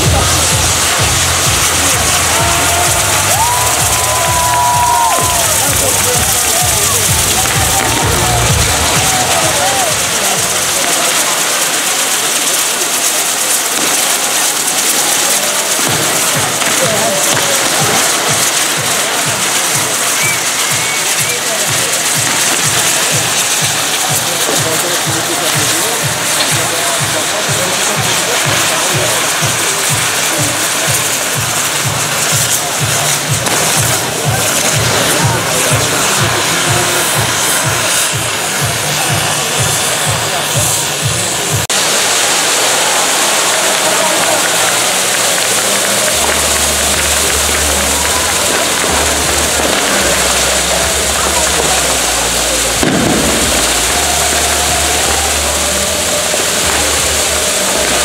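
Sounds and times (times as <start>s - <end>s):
fast low pulsing: 0.0s - 12.8s, 21.9s - 41.7s
fireworks rushing hiss: 0.0s - 58.0s.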